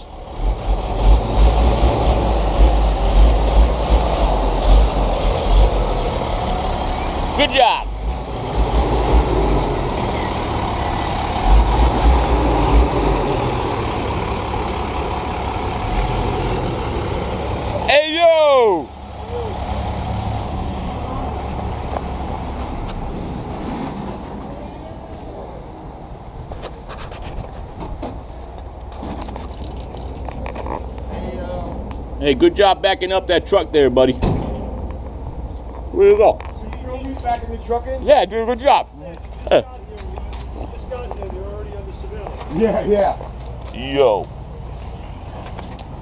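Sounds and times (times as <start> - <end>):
truck engine rumbling: 0.0 - 46.0.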